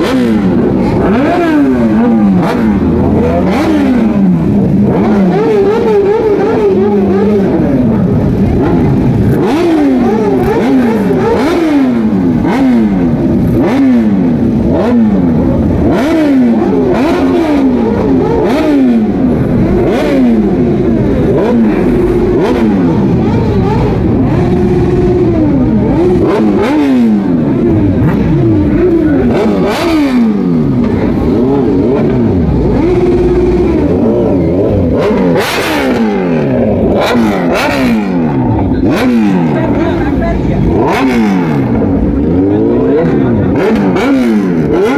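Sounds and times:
sport bike engines revving: 0.0s - 44.9s.

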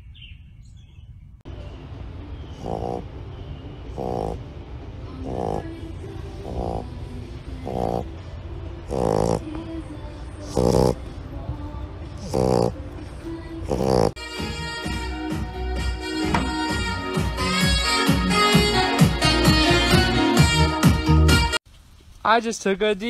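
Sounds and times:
puppy snoring: 2.5s - 3.1s, 3.9s - 4.5s, 5.1s - 8.2s, 8.8s - 9.7s, 10.4s - 11.1s, 12.2s - 13.0s, 13.6s - 14.2s.

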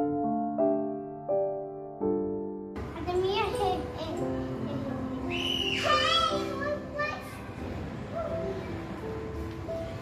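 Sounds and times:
child's high-pitched voice: 2.9s - 8.8s.

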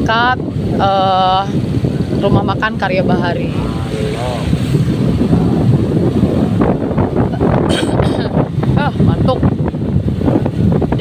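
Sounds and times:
vehicle engine and road rumble: 0.0s - 11.0s
wind buffeting microphone: 0.0s - 11.0s.

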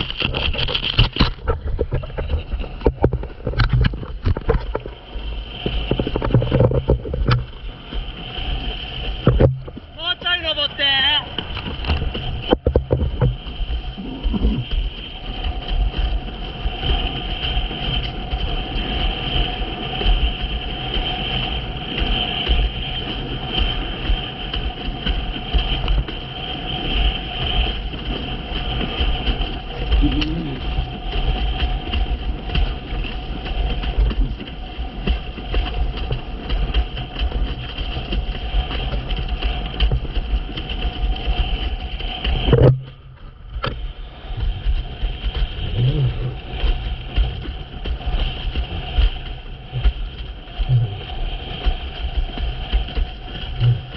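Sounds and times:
high whine: 0.0s - 15.6s, 40.7s - 53.9s
wind rushing over microphone: 0.0s - 53.9s.

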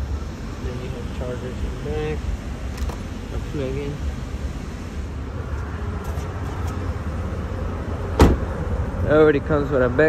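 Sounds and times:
truck door shutting: 8.1s - 8.7s.

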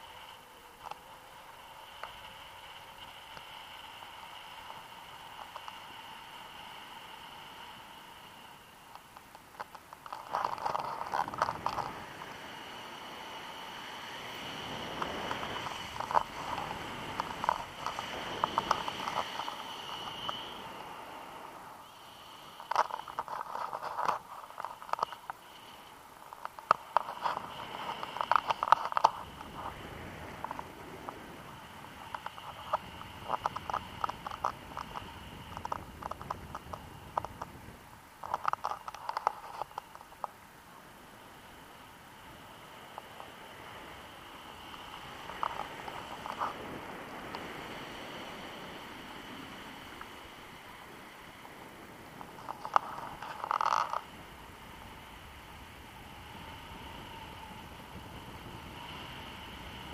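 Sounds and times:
rapid crackling ticks: 0.0s - 21.1s, 21.8s - 40.4s, 42.2s - 59.9s
wind hiss: 0.0s - 59.9s.

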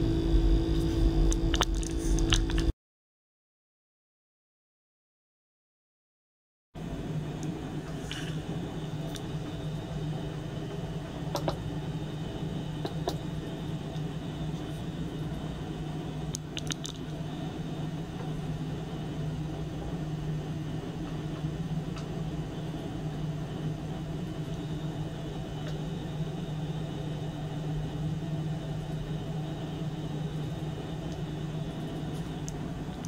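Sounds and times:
low electrical hum: 0.0s - 2.7s, 6.8s - 33.0s.

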